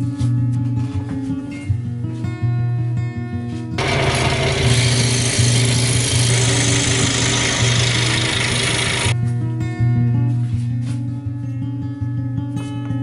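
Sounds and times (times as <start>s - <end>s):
scroll saw buzzing: 3.8s - 9.2s.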